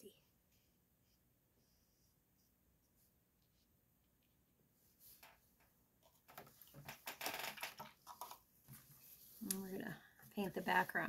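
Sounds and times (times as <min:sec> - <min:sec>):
scratchy rustling: 0:08.2 - 0:11.0.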